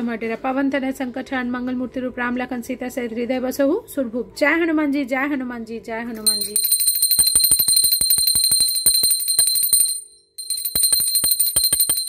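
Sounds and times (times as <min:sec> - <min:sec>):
hand bell ringing rapidly: 0:06.2 - 0:12.0.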